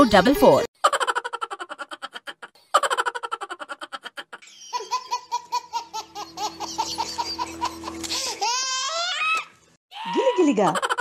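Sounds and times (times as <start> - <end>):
cartoon laughter: 0.8 - 8.1, 10.6 - 11.0
sing-song laugh: 0.8 - 8.4.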